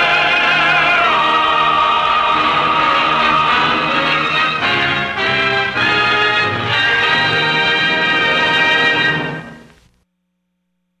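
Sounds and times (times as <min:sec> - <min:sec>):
held orchestral chord: 0:00.0 - 0:09.5.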